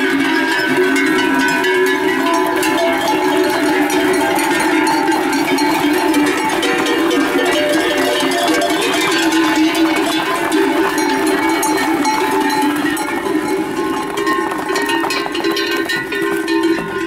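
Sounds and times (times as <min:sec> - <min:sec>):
hoofbeats on dirt: 0:00.0 - 0:17.0
livestock bells jangling: 0:00.0 - 0:17.0.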